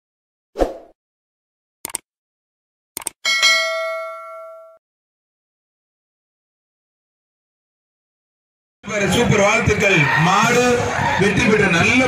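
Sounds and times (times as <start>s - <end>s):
bright bell ding: 3.2s - 4.8s.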